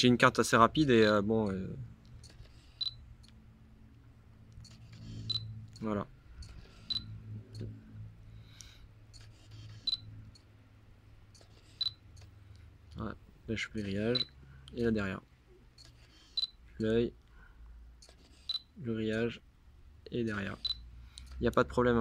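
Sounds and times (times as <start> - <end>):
high focus beep: 2.2 - 3.1, 4.6 - 5.6, 6.4 - 7.7, 9.1 - 10.5, 11.4 - 12.3, 14.1 - 14.4, 15.8 - 16.6, 18.4 - 18.7, 20.6 - 20.9
lens focus motor whirring: 4.6 - 5.6, 9.1 - 10.2.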